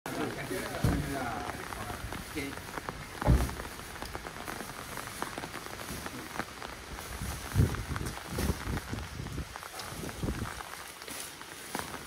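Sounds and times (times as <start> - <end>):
sandbags dropping with dull thuds: 0.1 - 9.0.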